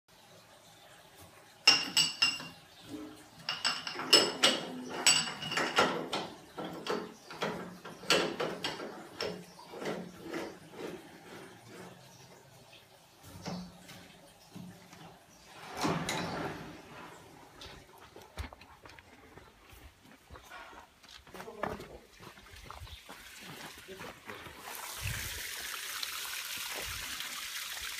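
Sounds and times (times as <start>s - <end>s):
metal clanking and knocking: 1.7s - 12.2s.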